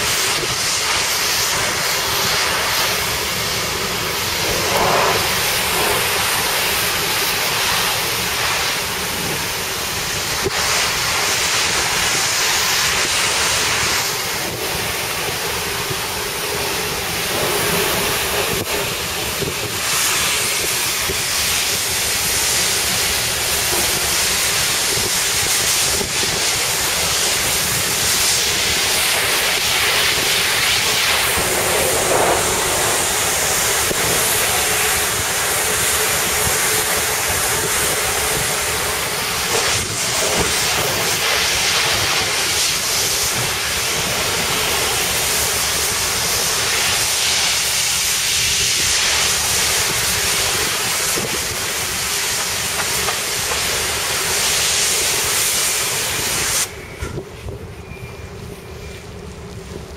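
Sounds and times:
wind: 0:00.0 - 0:59.9
sea waves rushing: 0:11.7 - 0:43.5
wind buffeting microphone: 0:13.0 - 0:44.3.

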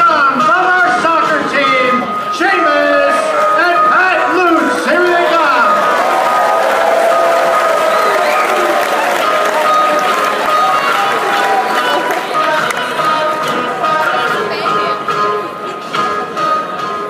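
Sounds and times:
background music in hall: 0:00.0 - 0:17.0
crowd talking: 0:00.0 - 0:17.0
people clapping: 0:04.5 - 0:14.4.

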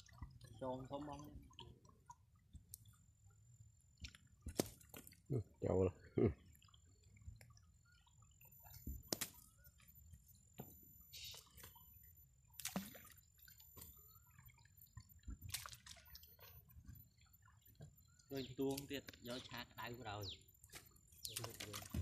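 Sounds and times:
water sloshing and dripping: 0:00.0 - 0:22.0.

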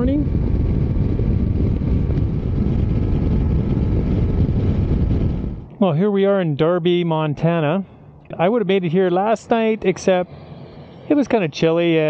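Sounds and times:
motorcycle engine rumble: 0:00.0 - 0:12.0
wind rush: 0:00.0 - 0:12.0.

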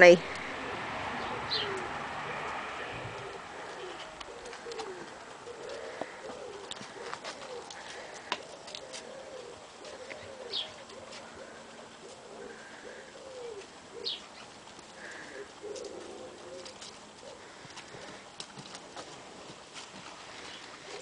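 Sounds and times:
low cooing bird calls: 0:00.3 - 0:19.2, 0:20.2 - 0:21.0.

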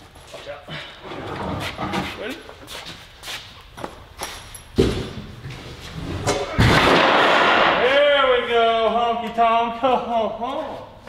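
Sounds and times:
wooden crash and clatter: 0:06.4 - 0:07.8.

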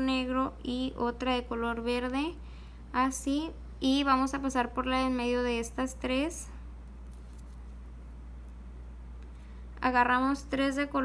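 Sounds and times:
steady low hum: 0:00.0 - 0:11.0
beads ticking and rustling: 0:06.9 - 0:08.6.

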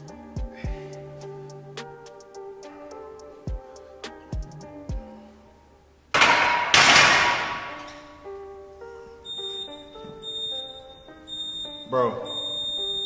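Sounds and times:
background music: 0:00.0 - 0:13.0
barbell clanking on metal rack: 0:06.2 - 0:08.2.

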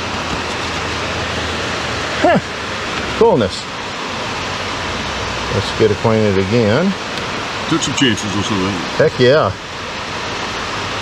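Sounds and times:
heavy rain hissing: 0:00.0 - 0:11.0.

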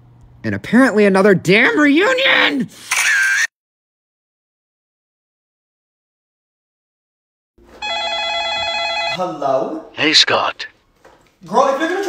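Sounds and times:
telephone trilling ring: 0:07.8 - 0:09.2.

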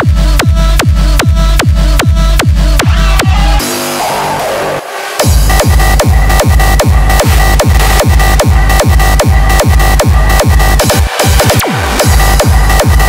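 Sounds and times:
heavy kick drum: 0:00.0 - 0:03.6, 0:05.2 - 0:13.0
hardstyle dance track: 0:00.0 - 0:13.0.

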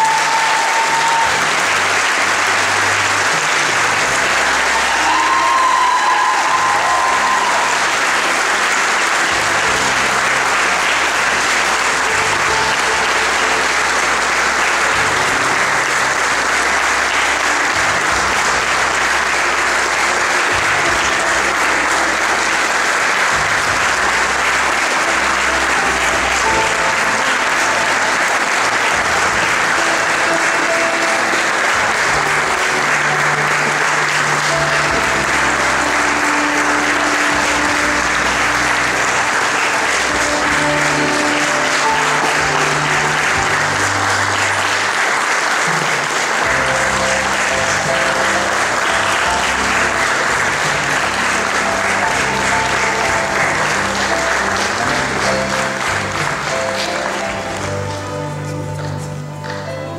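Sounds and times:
audience applauding: 0:00.0 - 0:59.9
music playing: 0:00.0 - 0:59.9.

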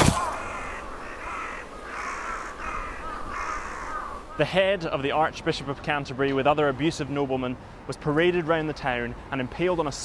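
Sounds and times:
crows cawing: 0:00.0 - 0:04.5.

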